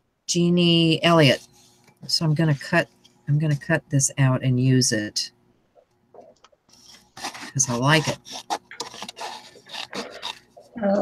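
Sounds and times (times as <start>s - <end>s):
woman speaking: 0.3s - 1.4s, 2.0s - 5.3s, 7.4s - 8.2s, 10.8s - 11.0s
paper rustling: 6.7s - 10.7s
scissors snipping paper: 6.8s - 10.5s.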